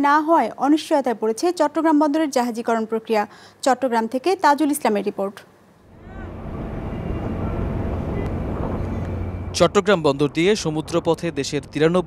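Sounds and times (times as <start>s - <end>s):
ship engine low rumble: 5.9s - 12.0s.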